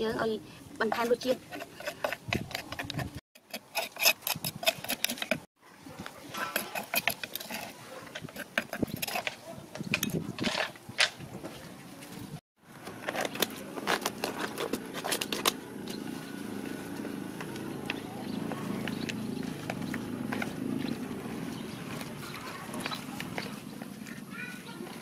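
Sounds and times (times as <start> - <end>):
metal spoon scraping wooden mortar: 0.8 - 5.5, 6.2 - 10.8, 18.8 - 25.0.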